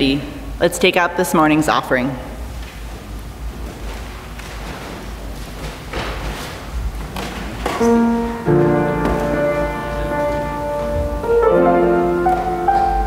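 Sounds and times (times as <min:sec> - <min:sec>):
low room rumble: 0:00.0 - 0:13.0
piano chords: 0:07.6 - 0:13.0.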